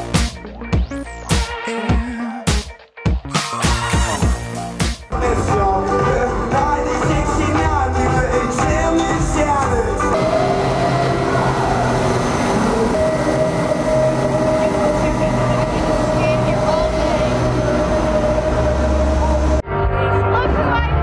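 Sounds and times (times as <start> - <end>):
background music with held notes: 0.0 - 10.2
misting fans rushing air: 10.2 - 19.6.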